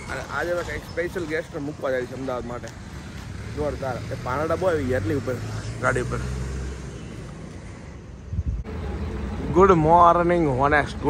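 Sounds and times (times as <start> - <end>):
faint street noise: 0.0 - 11.0.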